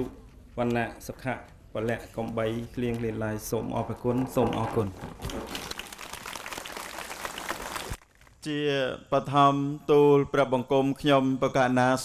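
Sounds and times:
audience applauding: 5.6s - 8.0s.

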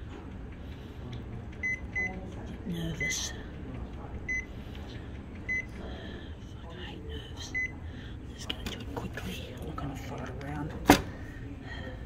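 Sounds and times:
machine low hum: 0.0s - 12.0s
photocopier key beeps: 1.6s - 2.2s, 4.3s - 4.5s, 5.5s - 5.7s, 7.5s - 7.8s.

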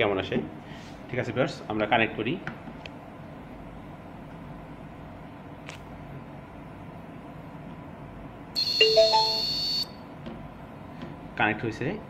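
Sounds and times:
high steady electronic tone: 8.6s - 9.9s
quick rising beeps: 8.6s - 9.9s.

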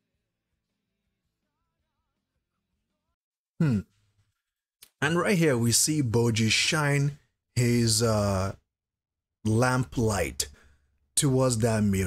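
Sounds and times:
man saying hmm: 3.6s - 3.9s.

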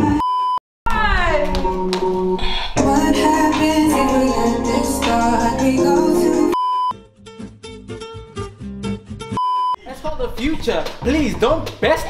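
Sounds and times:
music: 0.9s - 9.4s.

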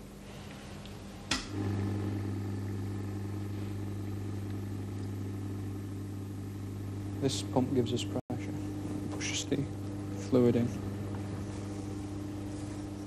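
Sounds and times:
electric motor humming: 1.4s - 13.0s.

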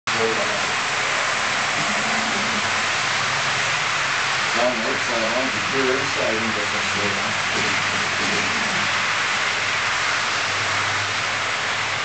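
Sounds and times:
low hum: 0.4s - 11.2s
model train cars rolling: 4.4s - 10.2s.

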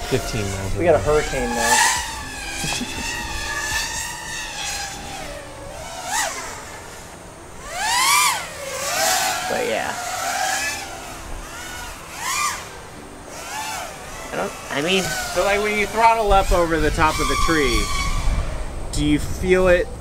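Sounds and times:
wind noise rumbling: 0.0s - 8.0s, 14.0s - 20.0s
quadcopter motors whining: 0.0s - 20.0s.

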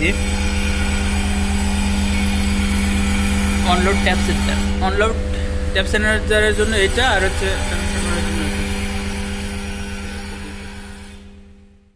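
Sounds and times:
transformer electrical hum: 0.0s - 11.9s.

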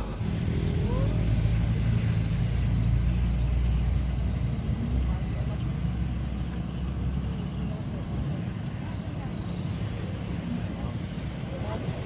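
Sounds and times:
small boat petrol engine running: 0.0s - 12.0s.

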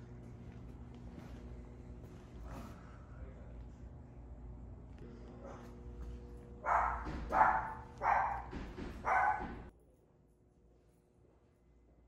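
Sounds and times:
steady low hum: 0.0s - 12.0s
dog barking: 6.6s - 9.7s.

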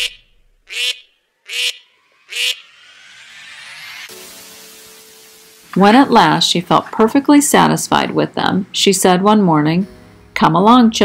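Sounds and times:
duck quacking: 0.0s - 2.6s
faint rising tone: 0.0s - 6.7s.

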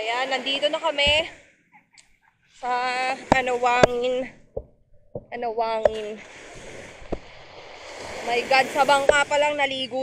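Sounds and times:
surf on shore: 0.0s - 1.5s, 2.5s - 10.0s.

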